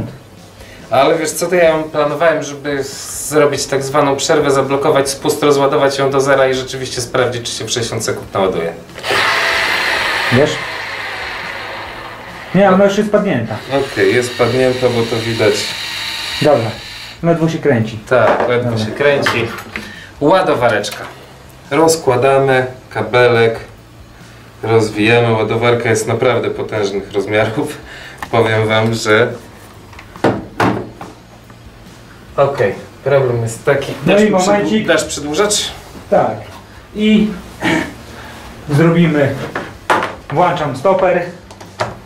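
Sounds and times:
cordless screwdriver motor running: 9.0 - 12.4, 13.6 - 17.2.

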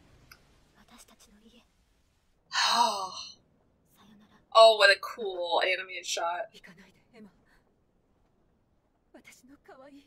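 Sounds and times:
person sighing: 2.5 - 3.3.

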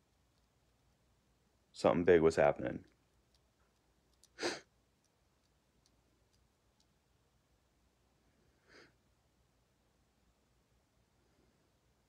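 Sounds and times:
person breathing: 4.4 - 4.7, 8.4 - 9.0.

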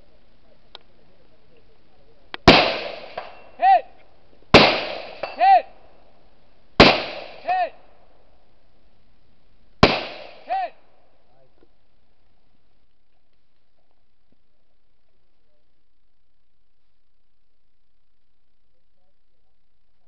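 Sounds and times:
rifle shots: 2.4 - 3.6, 4.5 - 5.4, 6.8 - 7.6, 9.8 - 10.6
distant steel target ringing: 2.5 - 3.6, 4.6 - 5.6.

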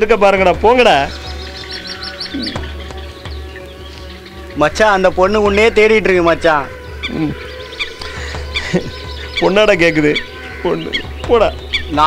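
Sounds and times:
background music with held notes: 0.0 - 12.0
high bird chirps: 0.8 - 12.0.

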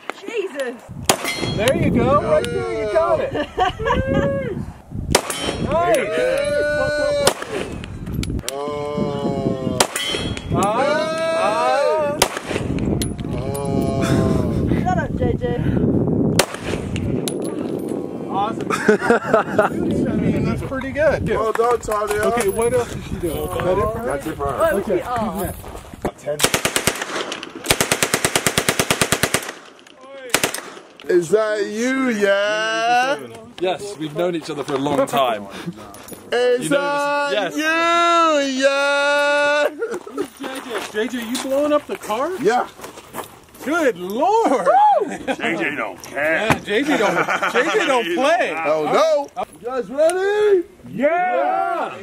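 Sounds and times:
handgun shots: 5.1 - 5.7
submachine gun automatic burst: 26.4 - 29.7.

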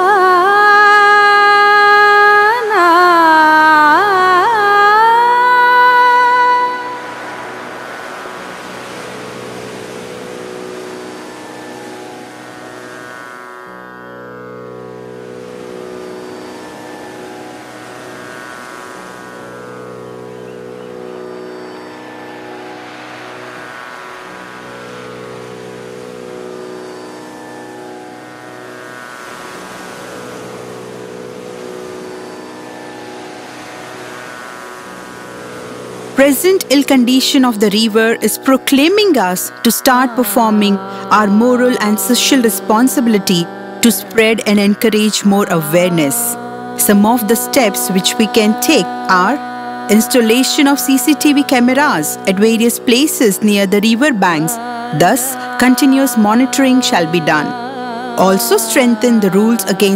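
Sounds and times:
tanpura drone: 0.0 - 59.9.

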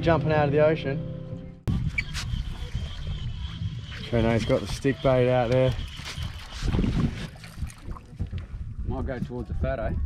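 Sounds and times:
wind buffeting microphone: 1.3 - 10.0
water splashing against boat hull: 4.5 - 8.6.

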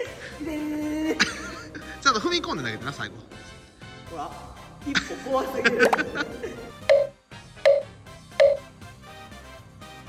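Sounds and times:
quiet background music: 0.0 - 10.0
bright pitched ping: 7.7 - 8.6.

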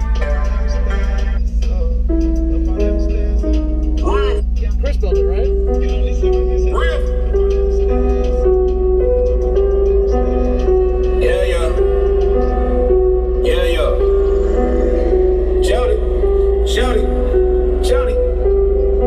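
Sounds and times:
deep bass line: 0.0 - 19.0
music melody and vocals: 0.0 - 19.0.

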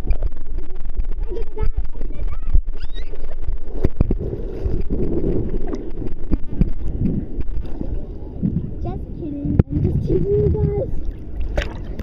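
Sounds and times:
sea water sloshing and splashing: 0.0 - 12.0
steady low rumble: 0.0 - 12.0.

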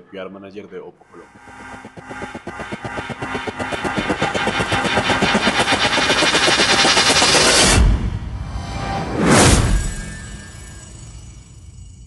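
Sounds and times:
whoosh: 1.2 - 11.9.

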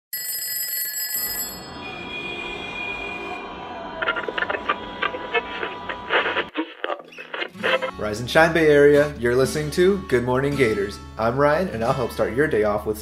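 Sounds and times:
alarm clock ringing: 0.2 - 3.4
noisy sound with high tones: 1.6 - 7.9.

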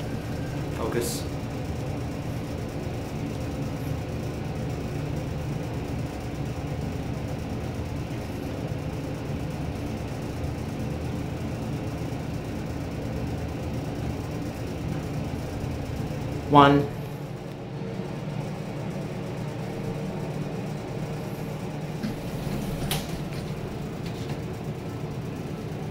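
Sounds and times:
elevator hum and rumble: 0.0 - 25.9.

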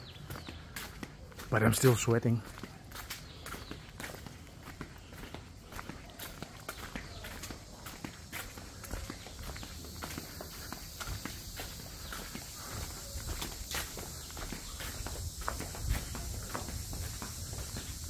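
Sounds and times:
footsteps on concrete path: 0.0 - 18.0.

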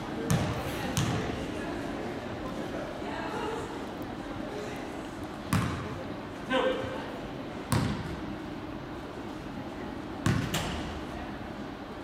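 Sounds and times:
murmur of the gym: 0.0 - 12.0.

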